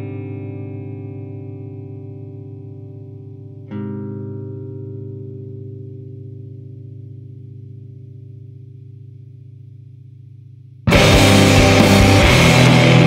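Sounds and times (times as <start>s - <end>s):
electric guitar chord ringing: 0.0s - 9.6s, 10.9s - 13.0s
rock band with distorted guitars: 10.9s - 13.0s.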